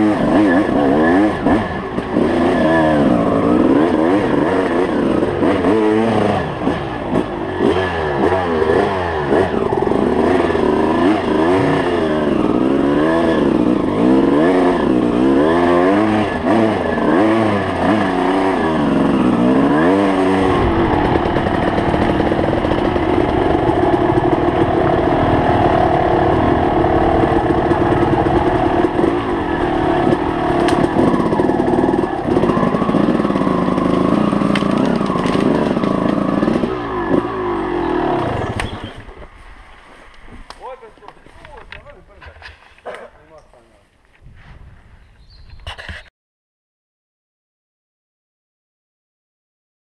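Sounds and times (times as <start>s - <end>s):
dirt bike engine revving: 0.0s - 43.1s.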